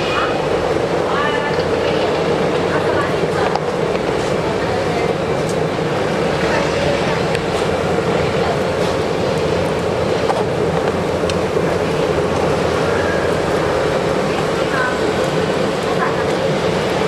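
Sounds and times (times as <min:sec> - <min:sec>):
faint voices: 0:00.0 - 0:17.0.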